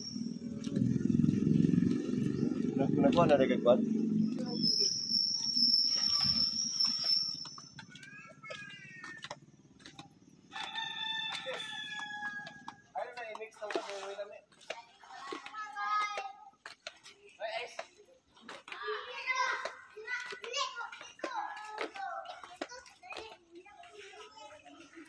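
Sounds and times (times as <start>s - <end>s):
rooster crowing: 10.5s - 12.9s.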